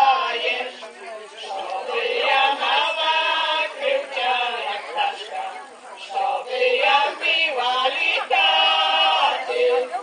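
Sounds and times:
women singing a cappella: 0.0s - 10.0s.

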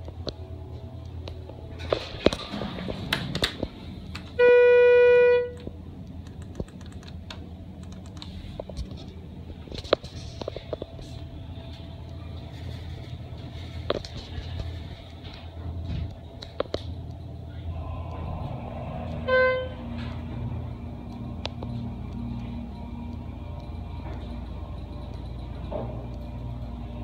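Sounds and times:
hydraulic elevator hum: 7.4s - 27.0s.

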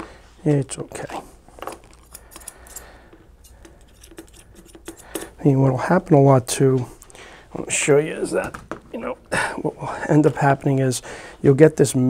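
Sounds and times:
scissors clicking: 2.0s - 5.2s.

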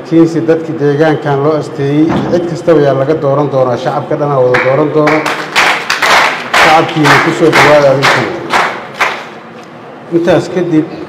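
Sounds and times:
man speaking into a microphone: 0.0s - 5.4s, 6.6s - 8.5s, 10.1s - 11.0s.

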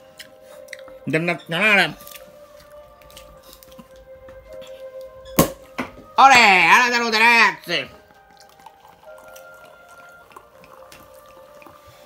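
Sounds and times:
music of held tones: 0.0s - 12.0s
bottle cork pop: 5.3s - 6.0s.

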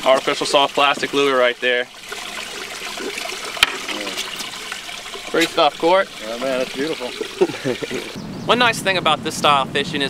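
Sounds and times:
water trickling and splashing: 0.0s - 8.2s.

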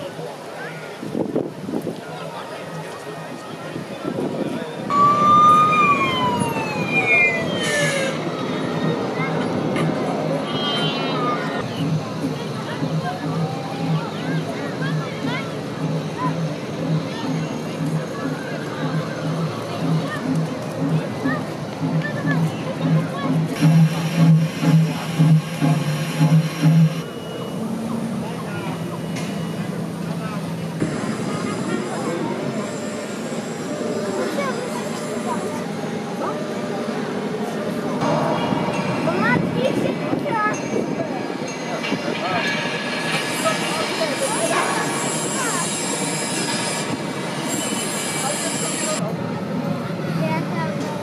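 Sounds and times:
people chatting: 0.0s - 51.0s
toy siren wailing: 4.9s - 8.2s
pulsing low hum: 11.6s - 27.0s.

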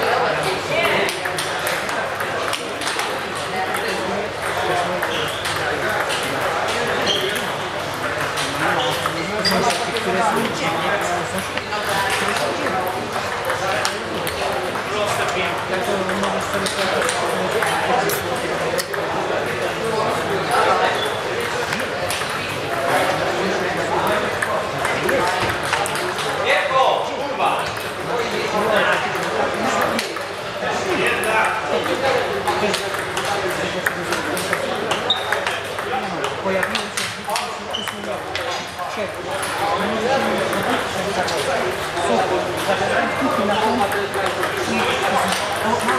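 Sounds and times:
hubbub of voices: 0.0s - 45.9s
table tennis balls clicking: 0.1s - 23.3s, 24.1s - 26.4s, 31.1s - 38.7s, 39.3s - 45.9s.

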